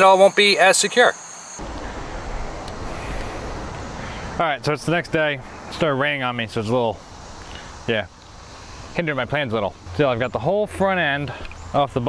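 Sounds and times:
insect high trill: 0.0 - 12.0
low outdoor rumble: 1.6 - 12.0.

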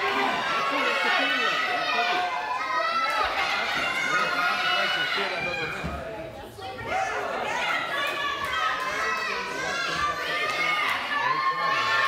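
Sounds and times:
children shouting and cheering: 0.0 - 12.0
crowd noise in a large hall: 0.0 - 12.0.

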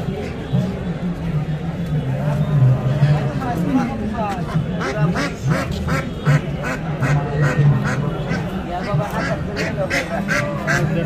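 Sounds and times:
crowd chatter: 0.0 - 11.0
ducks quacking: 4.4 - 11.0.

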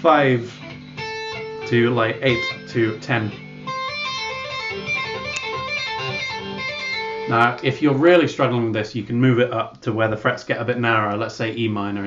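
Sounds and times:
electric guitar legato run: 0.0 - 8.2.

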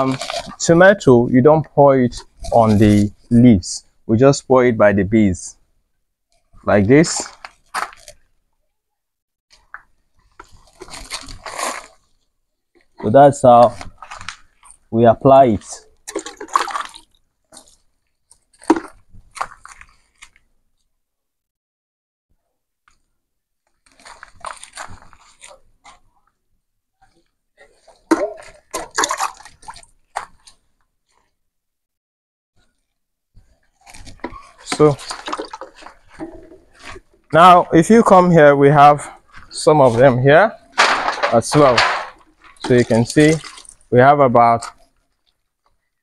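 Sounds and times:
liquid sloshing and splashing: 0.0 - 0.7, 9.5 - 14.9, 15.6 - 20.4, 23.8 - 26.1, 27.0 - 31.3, 32.6 - 37.4, 40.6 - 44.0, 44.6 - 46.0.

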